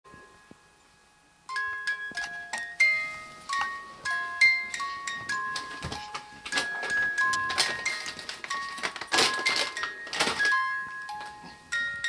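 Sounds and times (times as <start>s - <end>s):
crib mobile chiming lullaby: 0.1s - 12.0s.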